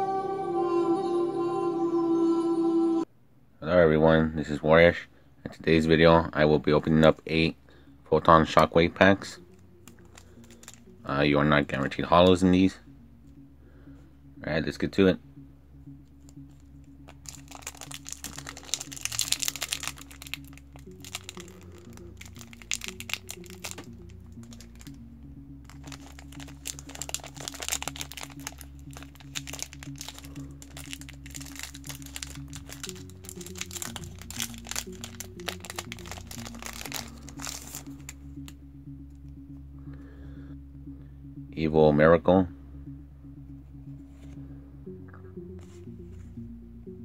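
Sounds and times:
quiet background music: 0:00.0 - 0:47.0
foil wrapper crinkling and tearing: 0:17.2 - 0:23.9, 0:25.7 - 0:38.2.

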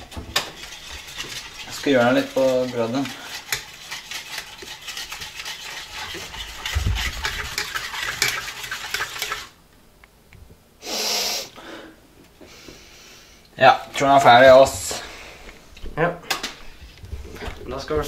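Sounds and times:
spoon stirring in metal saucepan: 0:00.0 - 0:09.6.

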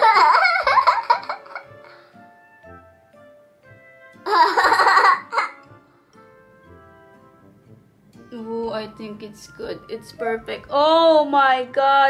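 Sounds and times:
girl giggling: 0:00.0 - 0:01.9, 0:04.2 - 0:05.7
quiet background music: 0:00.0 - 0:12.0.

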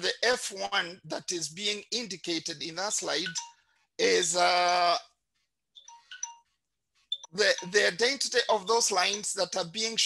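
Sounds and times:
electronic notification beeps: 0:03.1 - 0:03.6, 0:05.8 - 0:06.4, 0:07.1 - 0:08.1.

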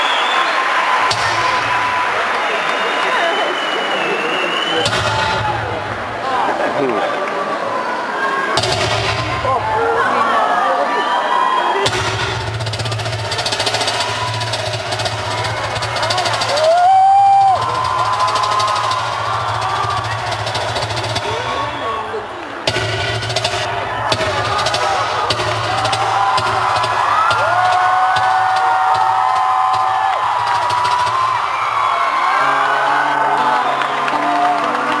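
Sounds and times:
audience screaming and cheering: 0:00.0 - 0:35.0
low concert drone: 0:08.6 - 0:10.3, 0:11.8 - 0:35.0.

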